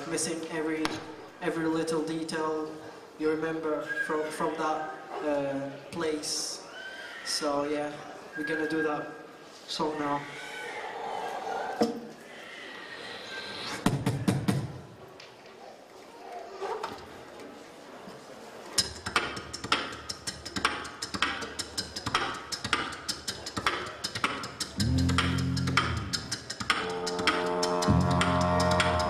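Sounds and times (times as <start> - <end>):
beatboxing into microphone: 18.8 - 29.0.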